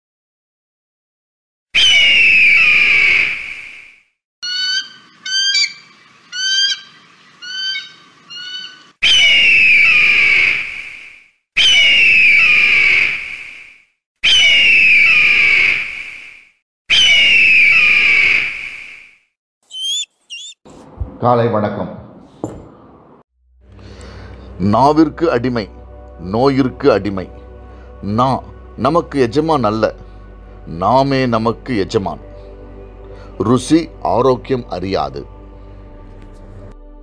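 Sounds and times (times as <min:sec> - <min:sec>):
short rising bird calls: 0:01.8 - 0:13.2, 0:14.2 - 0:15.8, 0:16.9 - 0:18.4, 0:19.6 - 0:20.6
bird of prey screaming: 0:01.8 - 0:13.6, 0:14.2 - 0:15.9, 0:16.9 - 0:19.0, 0:19.7 - 0:20.6.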